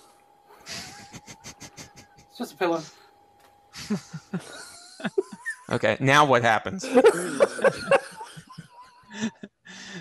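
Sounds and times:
faint steady whine: 0.0 - 10.0
person laughing in breathy bursts: 0.6 - 2.3, 3.8 - 5.7, 6.8 - 9.5.

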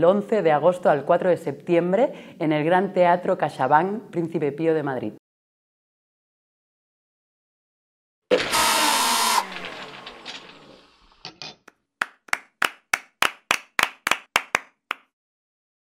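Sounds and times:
crash with ringing tones: 8.3 - 11.2.

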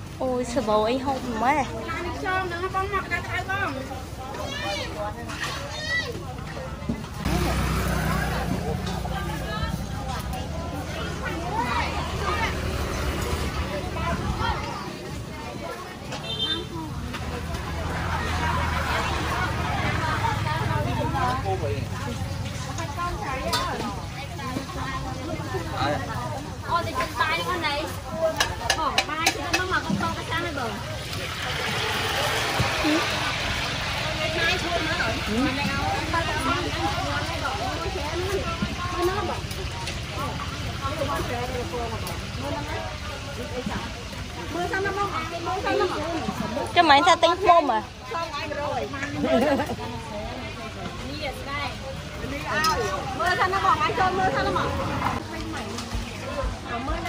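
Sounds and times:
people talking: 0.0 - 57.0.

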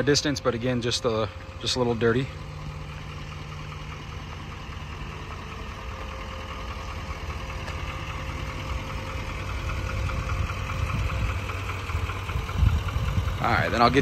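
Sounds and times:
diesel engine idling: 0.0 - 14.0.

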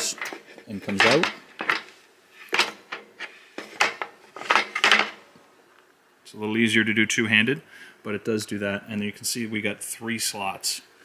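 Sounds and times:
wooden jaw rattling in metal frame: 0.0 - 1.9, 2.5 - 5.2.

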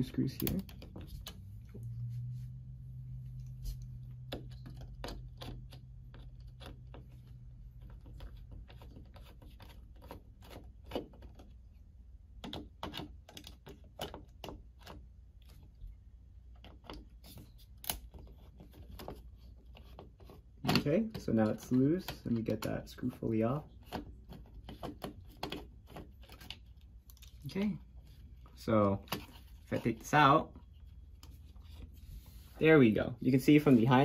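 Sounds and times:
low steady hum: 0.0 - 34.0.

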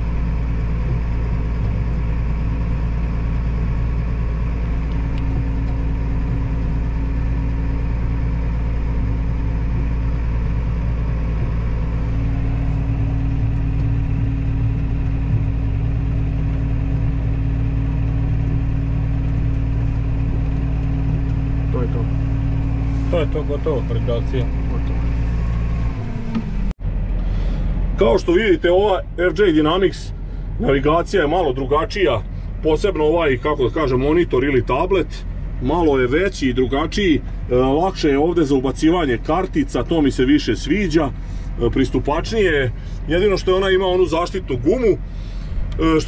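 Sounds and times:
tractor diesel engine running: 0.0 - 46.0.

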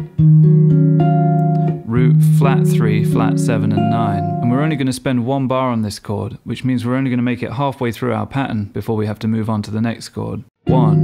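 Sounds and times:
electric guitar chord fingerstyle: 0.0 - 4.8, 10.6 - 11.0.

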